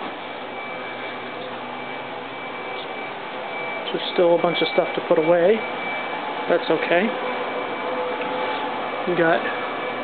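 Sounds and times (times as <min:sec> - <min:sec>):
thin high whine: 0:00.0 - 0:10.0.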